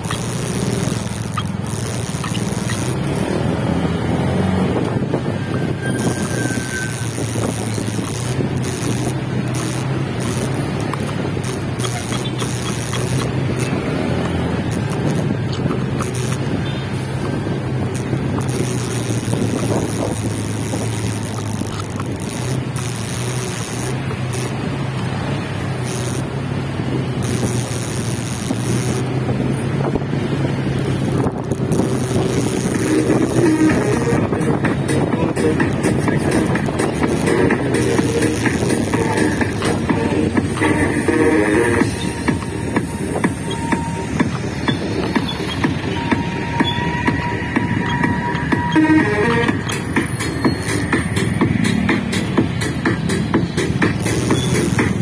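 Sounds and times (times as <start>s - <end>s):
motorcycle engine drone: 0.0s - 55.0s
road and wind noise: 0.0s - 55.0s
music: 33.0s - 55.0s.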